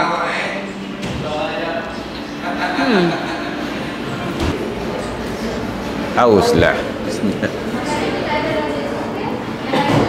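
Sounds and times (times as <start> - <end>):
low rumbling room noise: 0.0 - 10.0.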